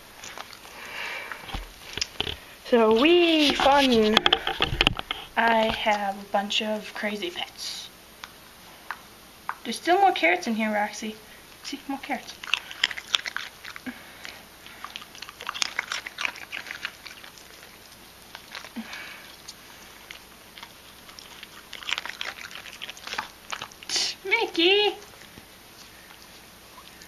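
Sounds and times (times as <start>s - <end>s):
dog crunching carrot: 0.0s - 6.0s, 12.2s - 27.0s.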